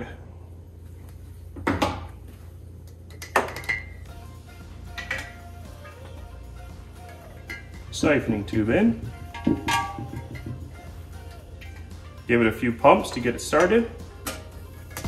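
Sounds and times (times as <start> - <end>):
steady low hum: 0.0 - 15.0
faint background music: 2.2 - 15.0.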